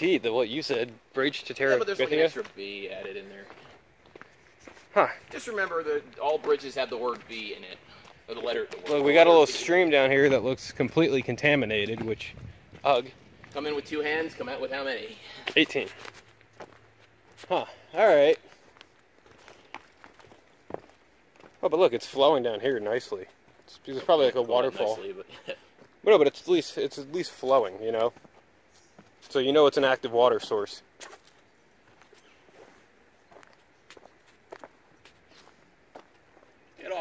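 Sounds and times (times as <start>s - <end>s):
footsteps on wooden planks: 2.0s - 7.4s, 15.4s - 17.6s, 18.4s - 21.6s, 28.0s - 29.3s, 31.0s - 36.6s.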